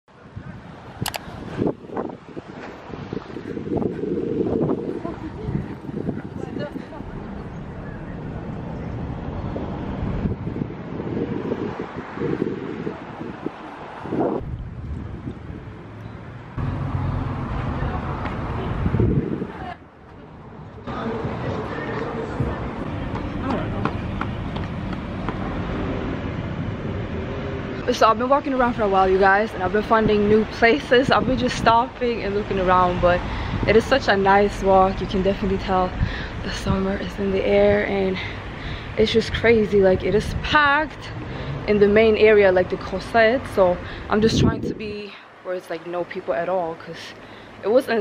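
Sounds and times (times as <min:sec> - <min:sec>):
wind buffeting microphone: 0:00.1 - 0:45.2
low traffic rumble: 0:00.1 - 0:48.0
sharp clicks: 0:01.0 - 0:01.2.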